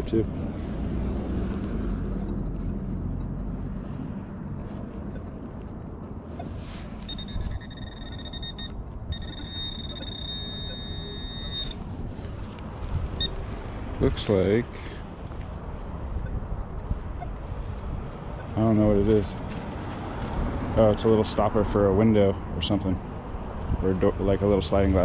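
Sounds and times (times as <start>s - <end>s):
low traffic rumble: 0.0s - 25.0s
metal detector high tone: 7.0s - 11.8s.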